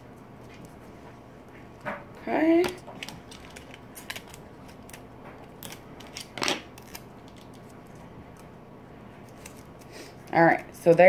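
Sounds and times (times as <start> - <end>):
tape tearing: 2.6 - 7.8
paper rustling: 2.6 - 8.1.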